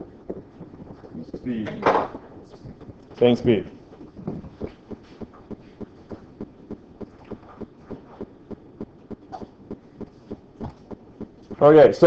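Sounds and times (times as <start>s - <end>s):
low room noise: 0.0s - 12.0s
soft regular knocking: 0.0s - 12.0s.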